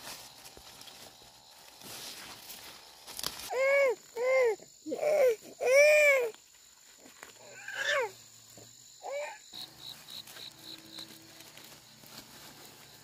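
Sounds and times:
faint insect chirping: 0:00.0 - 0:13.0
young child wailing: 0:03.5 - 0:06.4, 0:07.4 - 0:08.2, 0:09.0 - 0:09.4.

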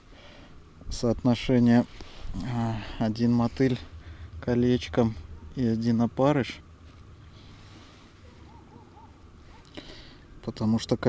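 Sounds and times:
faint hiss: 0:00.0 - 0:08.5
wind rumble on microphone: 0:00.9 - 0:07.4.

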